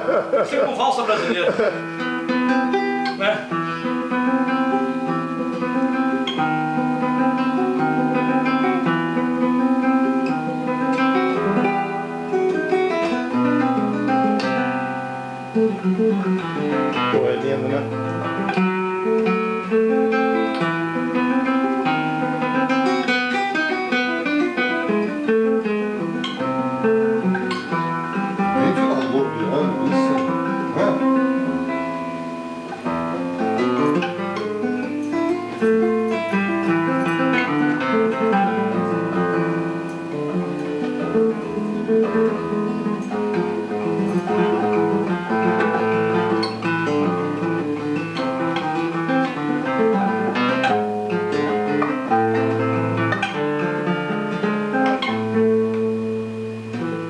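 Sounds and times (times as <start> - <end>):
fingerpicked classical guitar: 0.0 - 57.0.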